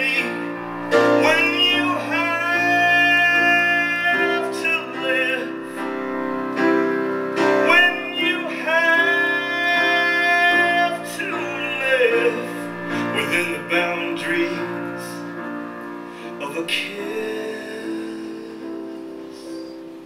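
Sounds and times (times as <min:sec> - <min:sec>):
man singing long notes: 0:00.0 - 0:19.9
piano accompaniment: 0:00.0 - 0:20.0.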